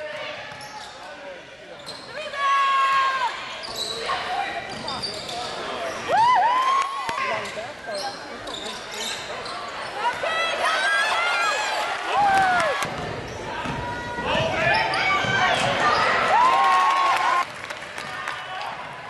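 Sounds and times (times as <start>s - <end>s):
sneakers squeaking on hardwood: 3.6s - 6.1s, 7.2s - 10.3s.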